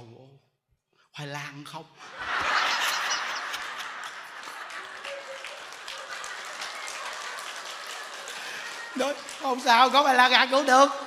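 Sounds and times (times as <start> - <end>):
audience laughing: 2.0 - 9.1
audience clapping: 2.2 - 11.0.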